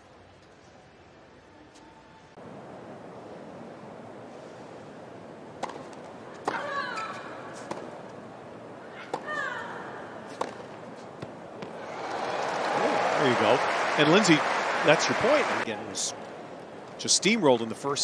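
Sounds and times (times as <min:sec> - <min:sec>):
racket hitting tennis ball: 0:05.6 - 0:08.0, 0:10.3 - 0:11.8
crowd cheering and applauding: 0:11.7 - 0:15.7.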